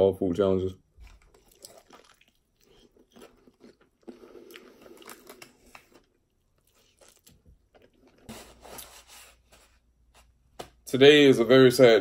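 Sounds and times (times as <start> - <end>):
person chewing: 1.0 - 9.0.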